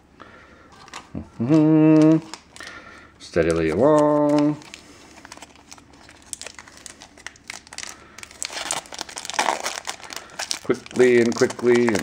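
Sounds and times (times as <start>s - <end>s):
foil wrapper crinkling and tearing: 0.8s - 12.0s.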